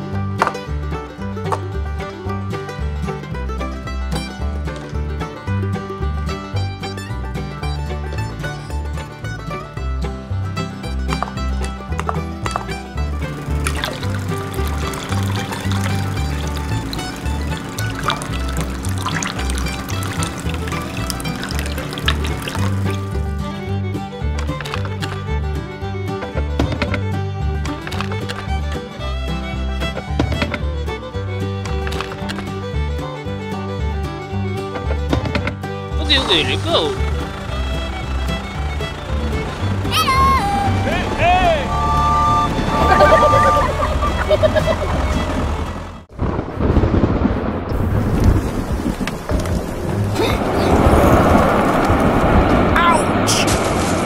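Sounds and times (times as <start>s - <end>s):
liquid pouring into plastic cups: 13.4s - 23.3s.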